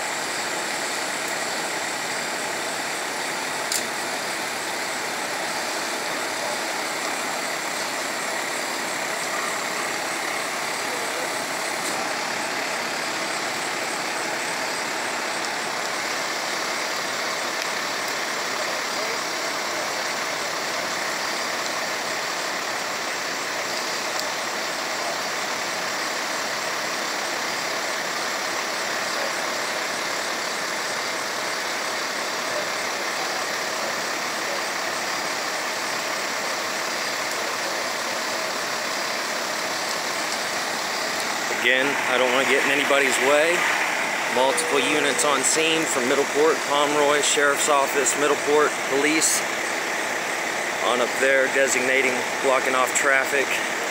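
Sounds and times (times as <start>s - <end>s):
fire engine idling: 0.0s - 53.9s.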